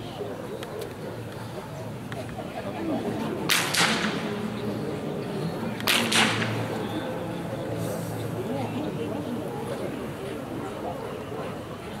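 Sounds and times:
blank pistol shots with echo: 5.9s - 6.6s.

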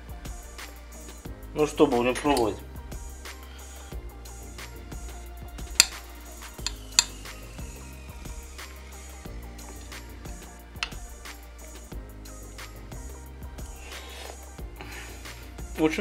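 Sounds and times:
background music: 0.0s - 16.0s
metal spoon clinking on plate: 6.6s - 7.2s.

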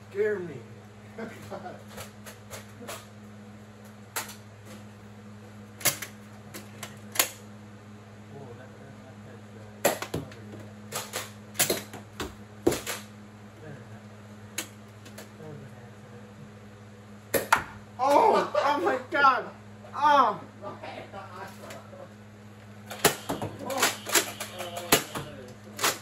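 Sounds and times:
steady low hum: 0.0s - 26.0s
darts hitting furniture: 9.8s - 13.1s, 17.3s - 17.8s, 22.9s - 25.3s
foam dart blasters firing: 22.9s - 26.0s.

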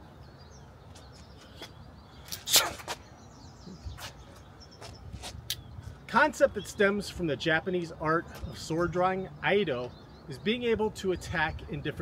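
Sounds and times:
faint bird chirps: 0.0s - 6.9s.

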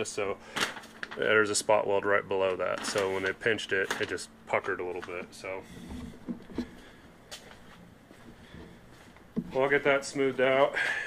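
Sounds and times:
faint handling noise: 2.4s - 10.6s.

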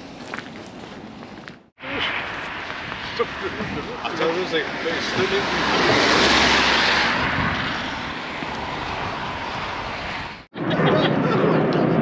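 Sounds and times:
tyres hissing on wet road: 1.8s - 10.3s.

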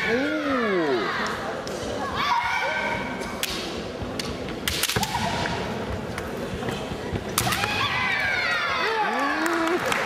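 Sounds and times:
bamboo swords clashing: 3.4s - 5.6s.

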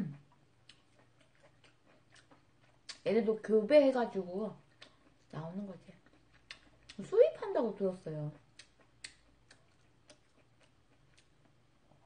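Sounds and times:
person chewing food: 0.0s - 3.1s, 4.5s - 7.1s, 8.2s - 12.0s.

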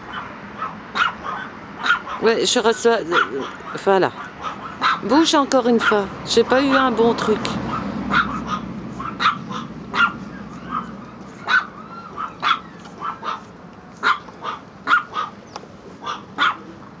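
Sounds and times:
puppy yapping barks: 0.0s - 2.4s, 3.0s - 6.1s, 7.6s - 15.4s, 16.0s - 16.8s.

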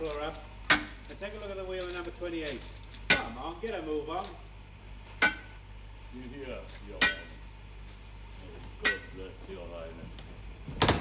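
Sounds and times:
hammer striking carriage wheels: 0.0s - 1.5s, 2.4s - 4.4s, 5.2s - 5.6s, 6.8s - 7.4s, 8.8s - 9.2s.

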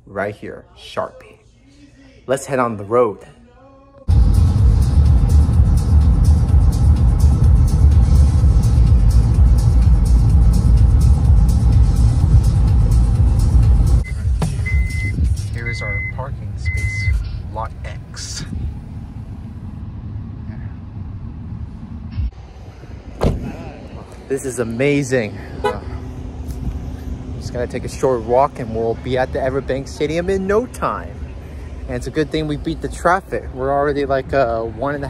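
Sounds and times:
music playing: 4.1s - 17.4s
car road and engine rumble: 4.1s - 35.0s.

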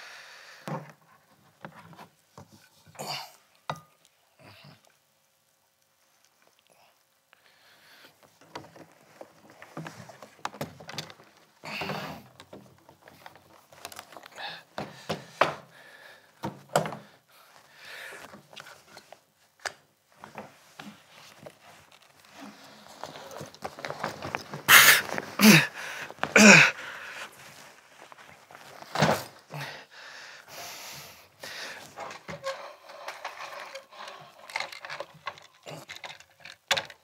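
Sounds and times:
rummaging in a suitcase: 8.1s - 15.7s, 16.4s - 29.6s, 31.3s - 37.0s
suitcase rustling: 20.1s - 29.5s.

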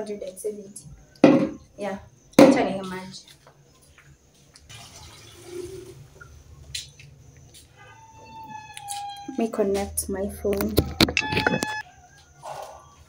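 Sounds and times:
water pouring: 4.7s - 6.3s.

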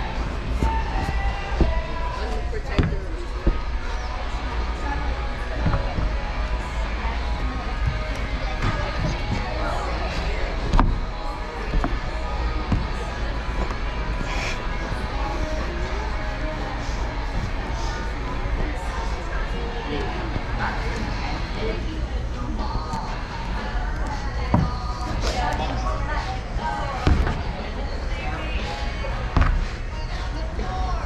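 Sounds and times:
background music: 0.0s - 31.0s
people talking in distance: 0.0s - 31.0s.

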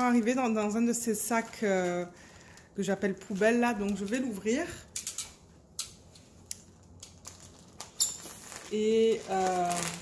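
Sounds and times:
plastic bag rustling: 6.3s - 10.0s.

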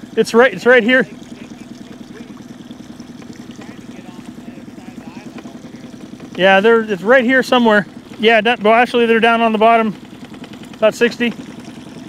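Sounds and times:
boat motor running: 0.0s - 12.0s.

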